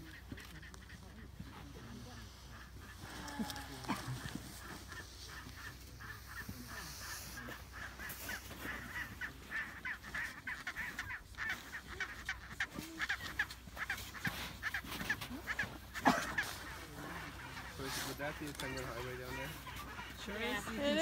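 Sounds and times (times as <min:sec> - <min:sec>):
penguins calling: 0:00.0 - 0:21.0.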